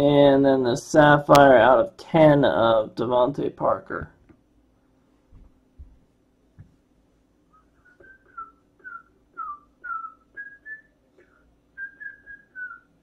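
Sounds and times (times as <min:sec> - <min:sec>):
person whistling a tune: 0:07.5 - 0:12.9.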